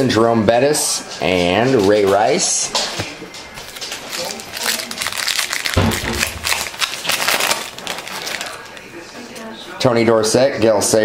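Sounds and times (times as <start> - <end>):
foil wrapper crinkling: 3.6 - 9.0.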